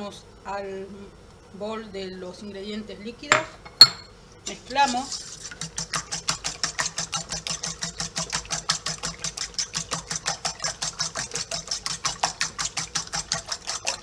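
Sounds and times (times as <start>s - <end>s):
fork beating eggs in metal bowl: 4.5s - 14.0s.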